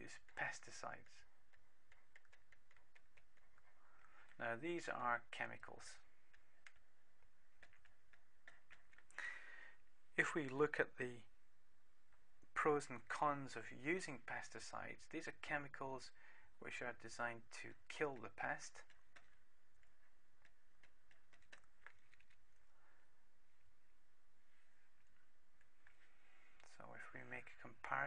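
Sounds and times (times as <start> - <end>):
low steady hiss: 0.0 - 28.0.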